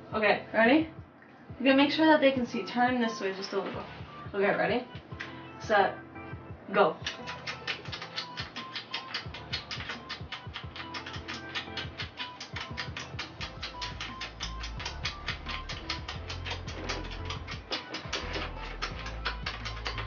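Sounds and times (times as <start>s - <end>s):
rapid kissing lip smacks: 7.0s - 20.0s.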